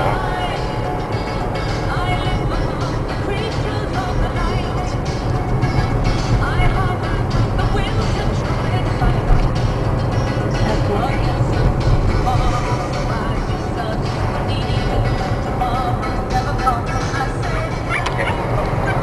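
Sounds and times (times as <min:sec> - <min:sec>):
engine and road rumble: 0:00.0 - 0:19.0
music with singing on car radio: 0:00.0 - 0:19.0.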